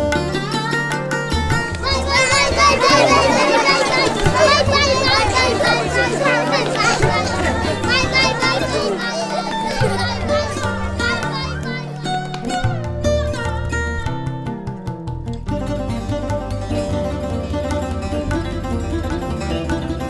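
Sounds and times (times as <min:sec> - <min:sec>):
children chattering and calling: 0:00.0 - 0:13.8
background music with bass line: 0:09.6 - 0:20.0.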